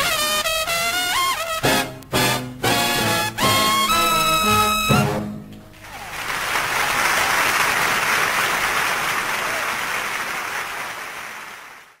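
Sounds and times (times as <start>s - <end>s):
dense clapping: 5.7s - 12.0s.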